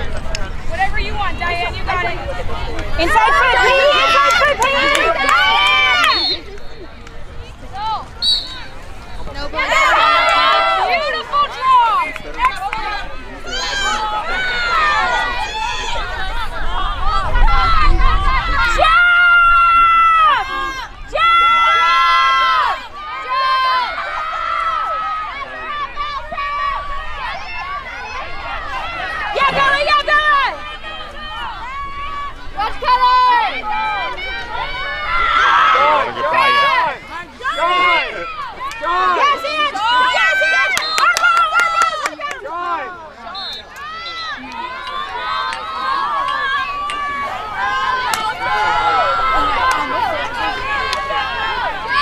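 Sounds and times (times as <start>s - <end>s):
people shouting and calling out: 0.0s - 52.0s.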